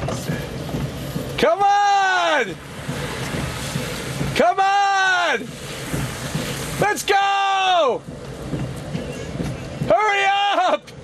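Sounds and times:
rain: 0.0 - 11.0
wind: 0.0 - 11.0
person shouting drawn-out call: 9.9 - 10.9.

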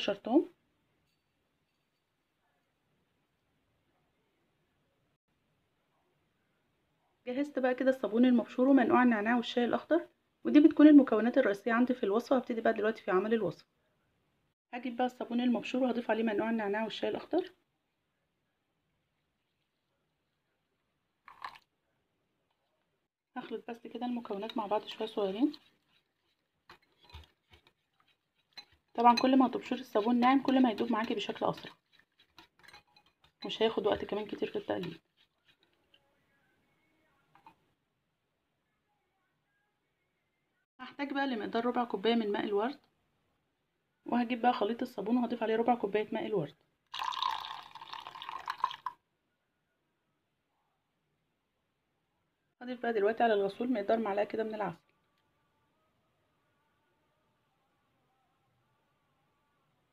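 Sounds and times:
liquid pouring into bowl: 21.3 - 21.7, 46.9 - 49.0
water drips: 46.9 - 49.0.

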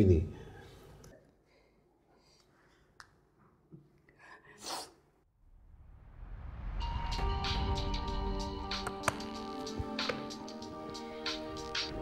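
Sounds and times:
background music: 6.6 - 12.0.

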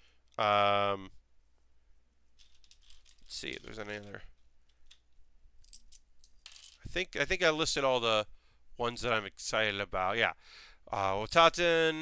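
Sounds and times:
man speaking: 0.4 - 1.1, 3.3 - 4.3, 6.9 - 8.2, 8.8 - 12.0.

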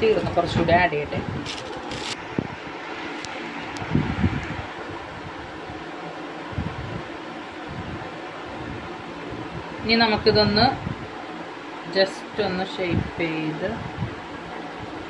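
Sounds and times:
plastic rustling: 1.4 - 2.2.

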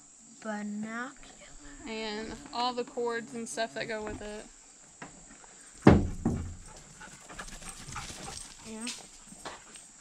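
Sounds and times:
thump in cardboard box: 5.8 - 6.7.

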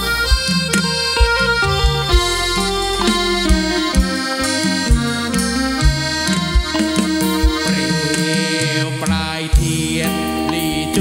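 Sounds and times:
free-reed accompaniment: 0.0 - 11.0
man chanting into a microphone: 7.9 - 11.0.

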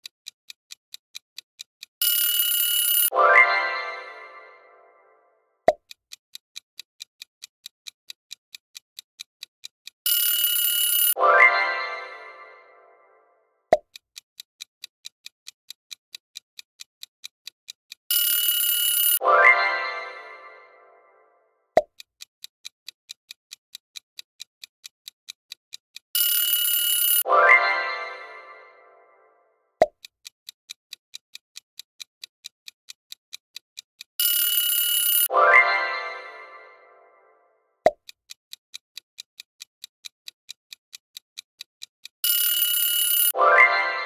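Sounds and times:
clock ticking: 0.0 - 44.0
ringing alarm: 2.0 - 4.0, 10.1 - 11.5, 18.1 - 19.6, 26.2 - 27.8, 34.2 - 35.8, 42.2 - 44.0
chime: 2.3 - 5.2, 10.3 - 13.2, 18.3 - 21.3, 26.4 - 29.4, 34.4 - 37.4, 42.4 - 44.0.

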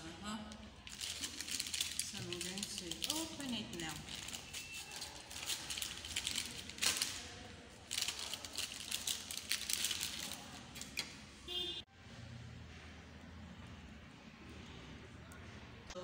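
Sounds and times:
pastry wrappers crinkling: 0.0 - 11.0
wrapper tearing: 0.6 - 11.1.

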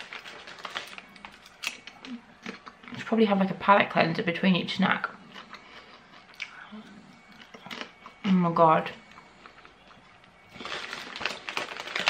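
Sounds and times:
popcorn crunching and clicking: 0.0 - 3.1, 5.3 - 8.3, 9.1 - 12.0.

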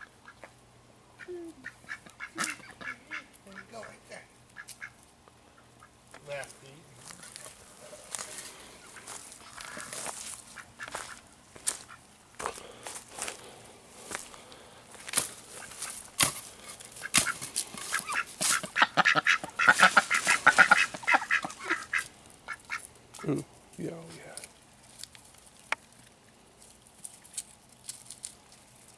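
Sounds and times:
ducks quacking: 1.2 - 6.0, 7.1 - 12.1, 17.0 - 23.4.

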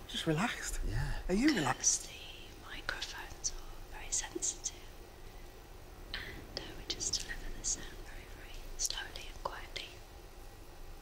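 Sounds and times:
person whispering: 0.7 - 4.9, 6.2 - 10.0.

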